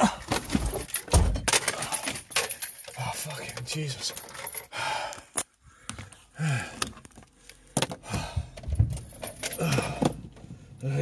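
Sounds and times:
person's tired vocal sounds: 0.0s - 0.4s, 6.3s - 7.0s, 9.4s - 10.2s, 10.8s - 11.0s
objects rattling and clicking: 0.0s - 4.7s, 6.8s - 10.4s.

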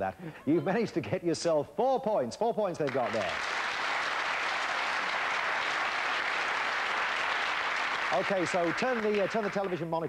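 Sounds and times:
audience applauding: 2.9s - 9.9s.

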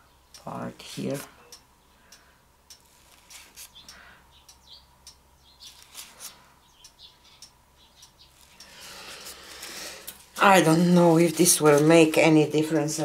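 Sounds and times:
light ticks: 0.3s - 2.9s, 3.6s - 9.2s.

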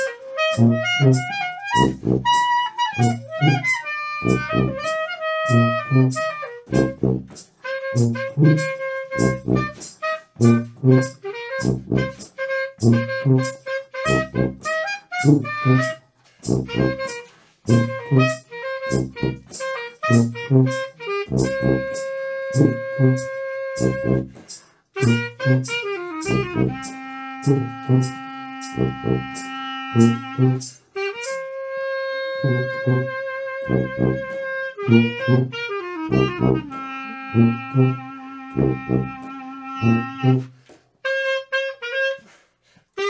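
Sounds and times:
wind instrument melody: 0.0s - 43.0s
pulsing bass line: 4.2s - 4.9s
percussion hits: 6.1s - 14.8s, 15.8s - 31.4s.

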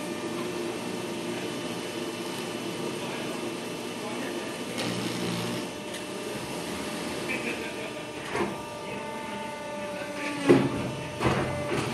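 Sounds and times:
machine humming with whine: 0.0s - 11.9s.

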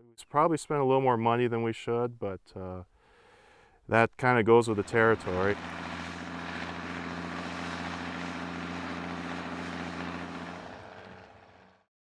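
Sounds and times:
tractor diesel engine running: 4.7s - 11.8s.

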